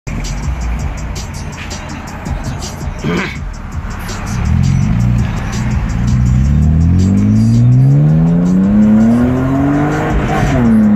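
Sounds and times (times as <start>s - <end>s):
music with quick steady beat: 0.1s - 10.9s
car accelerating away: 3.9s - 10.9s.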